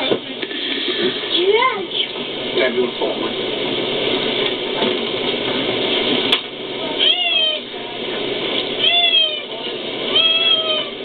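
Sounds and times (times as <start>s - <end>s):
cat meowing: 7.0s - 7.7s, 8.8s - 9.5s, 10.1s - 11.0s.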